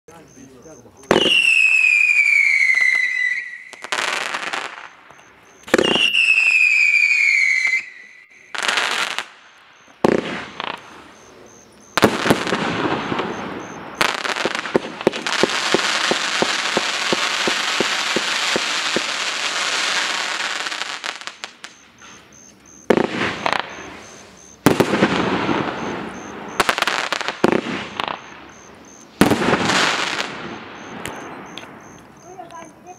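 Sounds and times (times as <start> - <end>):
firework crackling barrage: 1.1 - 32.4
firework whistles: 1.1 - 32.4
firework launches and bursts: 5.6 - 11.1, 12.0 - 22.1, 22.8 - 28.5, 29.1 - 31.8.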